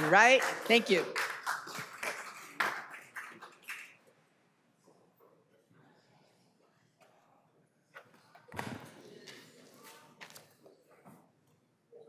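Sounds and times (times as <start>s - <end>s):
scattered hand claps: 0.0s - 4.0s.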